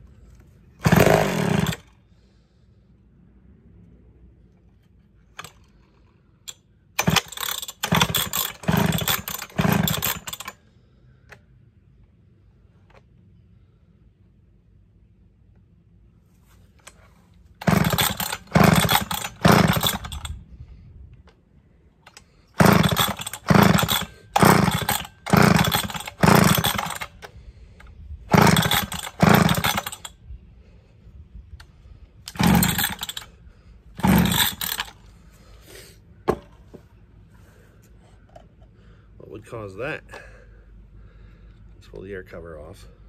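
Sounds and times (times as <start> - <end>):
chainsaw recoil starter pulls: 0.8 - 2.0, 5.3 - 10.6, 16.8 - 20.4, 22.0 - 30.2, 32.2 - 35.1
engine cranking: 0.8 - 2.0, 5.3 - 10.6, 16.8 - 20.4, 22.0 - 30.2, 32.2 - 35.1.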